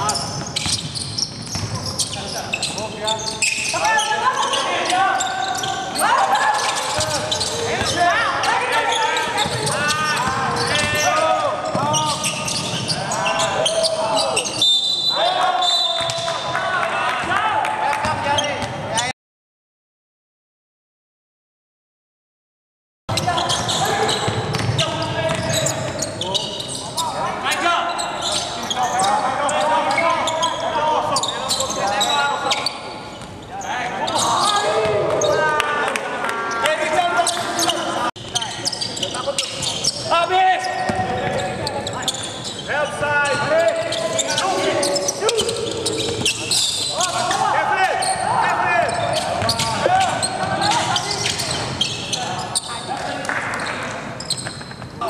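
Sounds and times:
players shouting: 3.7s - 18.1s, 42.8s - 52.4s.

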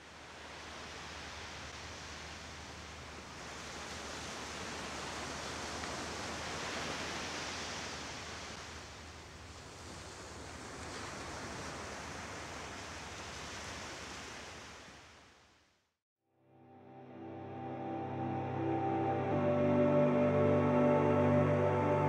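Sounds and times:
waves washing onto beach: 0.0s - 15.2s.

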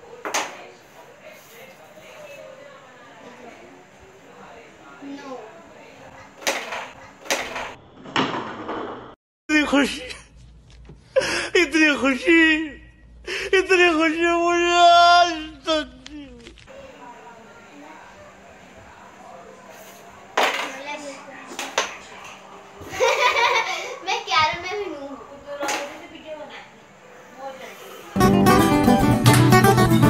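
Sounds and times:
carrom pieces clacking on board: 6.4s - 8.9s.

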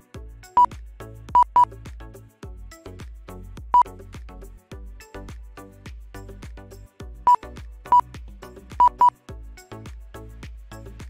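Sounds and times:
background music with steady beat: 0.0s - 11.0s
short sharp timing beeps: 1.4s - 1.7s, 8.8s - 9.1s.

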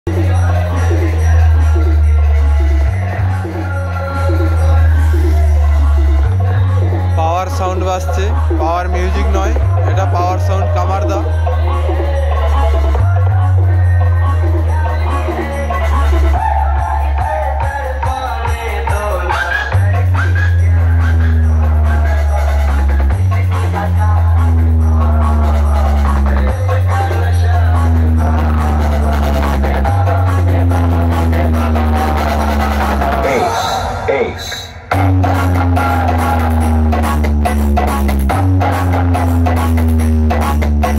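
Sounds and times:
vocal line over music: 0.0s - 40.9s
dj music with heavy bass: 0.1s - 40.9s.

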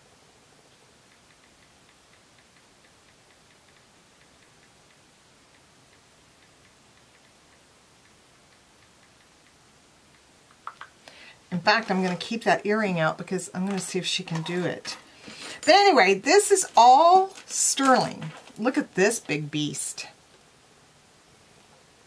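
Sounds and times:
smartphone keyboard ticks: 1.1s - 11.0s.

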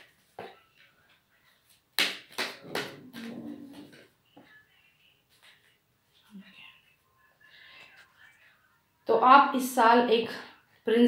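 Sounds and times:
faint whispering: 6.2s - 8.8s.

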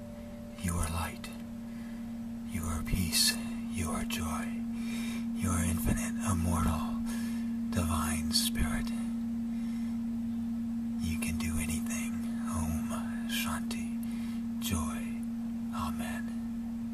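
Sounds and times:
steady drone tone: 0.0s - 16.9s
man whispering: 0.6s - 1.4s, 2.5s - 4.7s, 5.4s - 9.2s, 11.0s - 16.4s.

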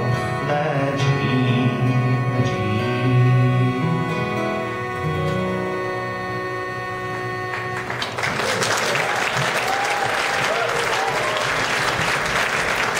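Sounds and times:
uilleann pipes: 0.0s - 11.6s
audience applauding: 7.5s - 12.9s.

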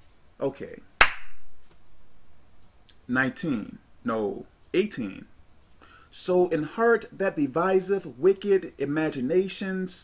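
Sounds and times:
hand smack: 1.0s - 1.8s.

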